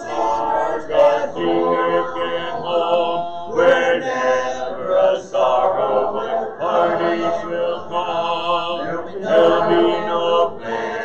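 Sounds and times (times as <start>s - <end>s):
congregation singing a hymn: 0.0s - 11.0s.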